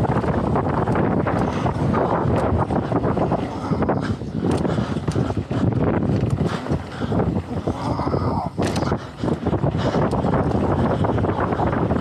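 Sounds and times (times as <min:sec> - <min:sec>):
bike rattling and clacking: 0:00.0 - 0:12.0
tyre noise on dirt trail: 0:00.0 - 0:12.0
wind noise on microphone: 0:00.0 - 0:12.0.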